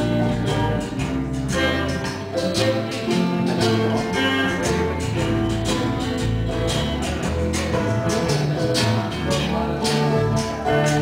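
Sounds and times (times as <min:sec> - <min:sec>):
bass line: 0:00.0 - 0:11.0
strummed acoustic guitars: 0:00.0 - 0:11.0.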